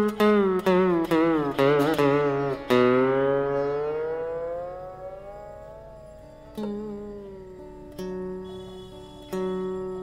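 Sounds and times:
slide guitar note gliding upward: 0:00.0 - 0:10.0.

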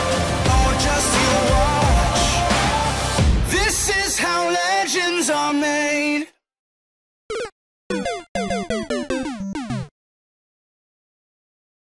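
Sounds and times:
stuttering electronic tones: 0:07.3 - 0:09.9.

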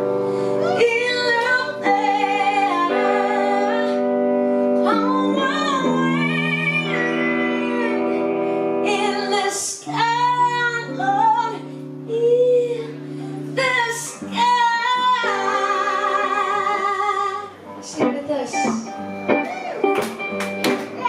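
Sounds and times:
woman singing: 0:00.0 - 0:19.0
guitar sustained chords: 0:00.0 - 0:21.0.

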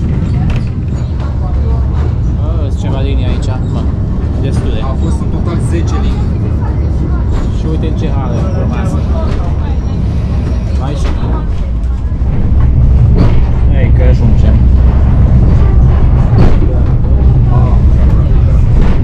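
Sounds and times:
indistinct voices: 0:00.0 - 0:19.0
railcar engine drone: 0:00.0 - 0:19.0.

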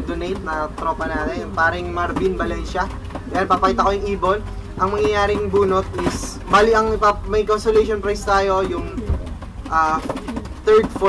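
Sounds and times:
man speaking: 0:00.0 - 0:11.0
pigeon cooing: 0:08.5 - 0:11.0.

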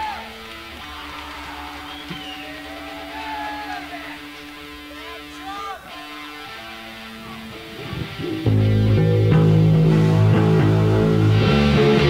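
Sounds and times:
guitar feedback tones: 0:00.0 - 0:12.0
electric guitar steady note: 0:02.2 - 0:12.0.

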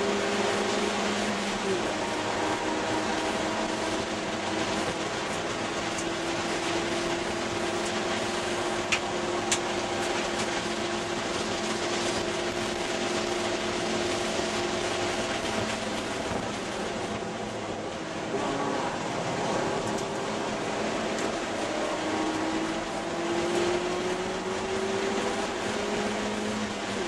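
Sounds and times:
car engine running hard: 0:00.0 - 0:27.0
road noise: 0:00.0 - 0:27.0.

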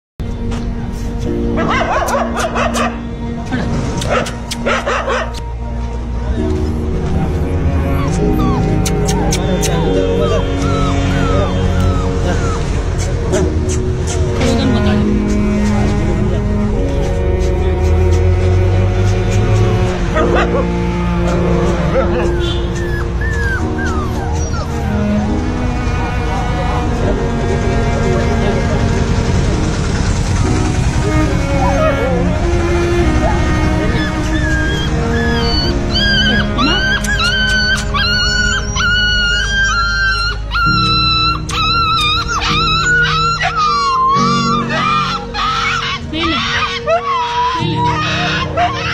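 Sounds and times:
background music low notes: 0:00.2 - 0:48.9
dog whining: 0:07.8 - 0:14.6, 0:21.3 - 0:25.4, 0:31.4 - 0:32.3, 0:33.2 - 0:48.9.

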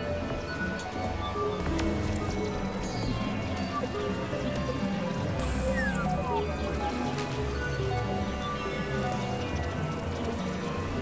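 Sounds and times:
experimental synthesizer drones: 0:00.0 - 0:11.0.

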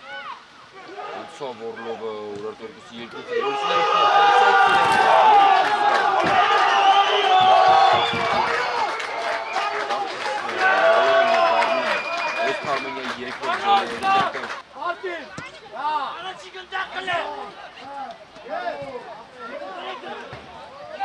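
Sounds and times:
men shouting and cheering: 0:00.7 - 0:02.3, 0:02.9 - 0:21.0.

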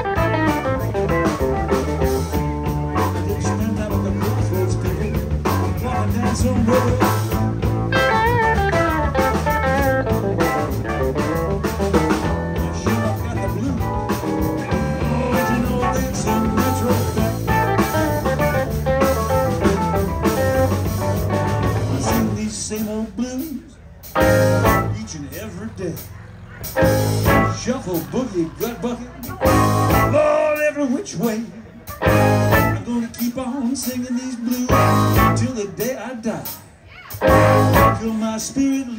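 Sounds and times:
electric guitar: 0:00.0 - 0:22.4, 0:24.1 - 0:25.0, 0:26.6 - 0:28.2, 0:29.2 - 0:30.3, 0:31.8 - 0:32.9, 0:34.7 - 0:35.5, 0:37.1 - 0:38.2
electric blues band playing: 0:00.0 - 0:38.9.

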